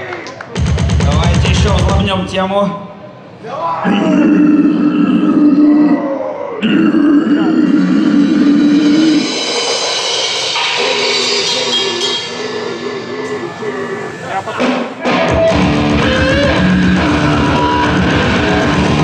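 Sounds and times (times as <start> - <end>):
guttural vocal growls: 3.8 - 9.4, 10.8 - 14.7.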